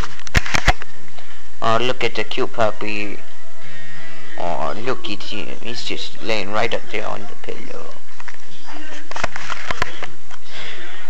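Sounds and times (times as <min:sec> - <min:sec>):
camera clicks and rubbing: 0:00.0 - 0:00.9, 0:09.1 - 0:10.2.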